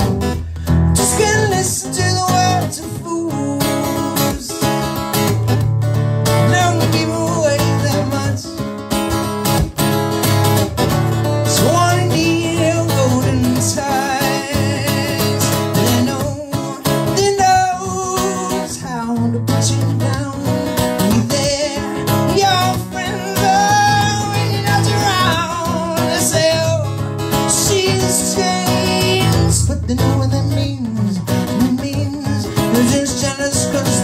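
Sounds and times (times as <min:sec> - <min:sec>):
man singing: 0:00.0 - 0:05.5, 0:06.2 - 0:09.2, 0:11.2 - 0:34.0
acoustic guitar strumming: 0:00.0 - 0:34.0.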